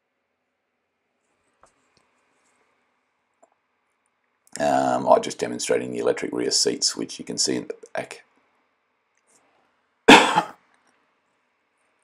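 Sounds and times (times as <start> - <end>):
person coughing: 10.1 - 10.6.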